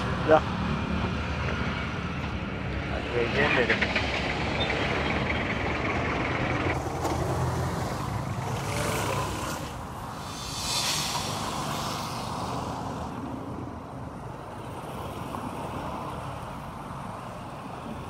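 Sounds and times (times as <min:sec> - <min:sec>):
road traffic rumble: 0:00.0 - 0:18.0
hissing swells: 0:06.8 - 0:13.9.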